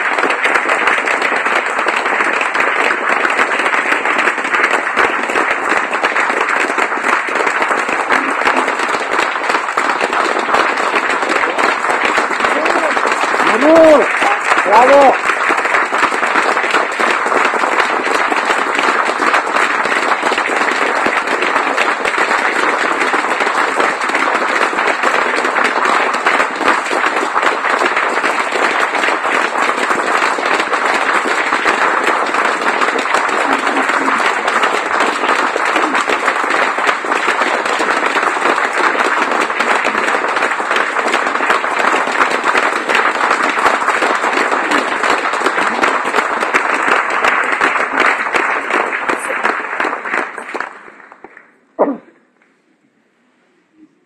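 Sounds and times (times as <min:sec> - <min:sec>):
audience applauding: 0:00.0 - 0:52.0.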